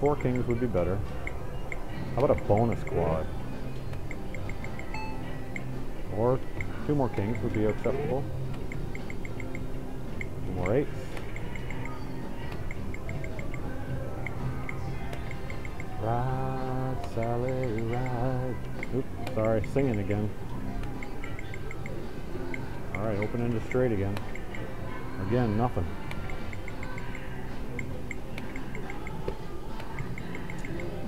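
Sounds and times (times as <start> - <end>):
casino background din: 0.0 - 31.0
high electronic beeps: 1.2 - 3.3, 3.9 - 5.7, 8.7 - 10.7, 11.3 - 16.0, 26.2 - 29.2.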